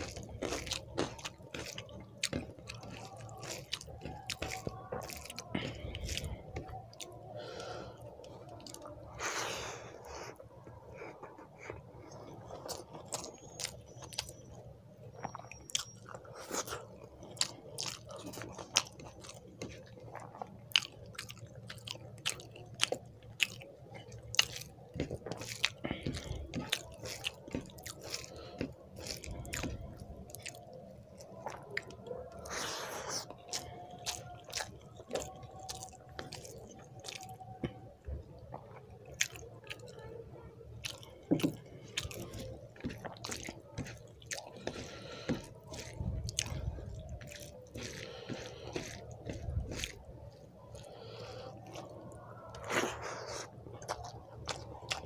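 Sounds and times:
mouth chewing with wet smacks: 0:00.0 - 0:09.2, 0:11.3 - 0:55.0
fingers squishing rice: 0:00.0 - 0:55.0.

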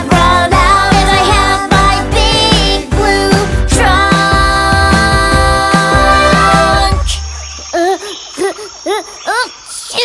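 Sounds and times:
song music: 0:00.0 - 0:07.3
crickets chirring: 0:07.0 - 0:10.0.

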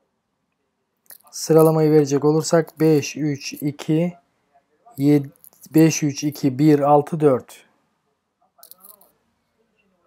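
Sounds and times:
faint distant voice: 0:00.0 - 0:10.0.

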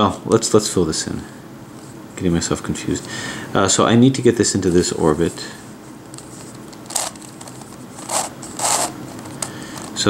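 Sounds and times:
twisty puzzle plastic scraping turns: 0:06.2 - 0:10.0.

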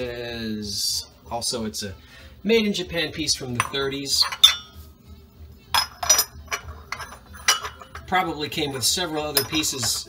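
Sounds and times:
ceramic lid clinking on jar: 0:03.6 - 0:04.8, 0:05.7 - 0:10.0.

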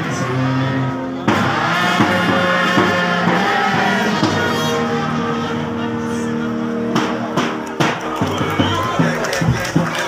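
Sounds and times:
trumpets holding notes: 0:00.0 - 0:09.3
live band music: 0:00.0 - 0:10.0.

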